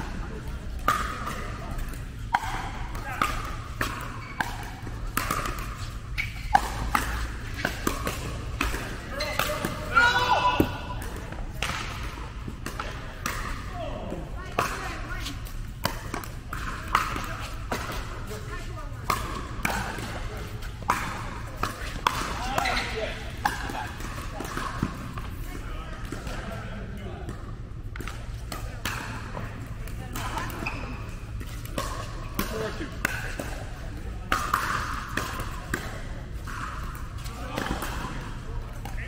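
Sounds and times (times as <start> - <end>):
ball bouncing: 0.5 - 25.4, 27.2 - 39.0.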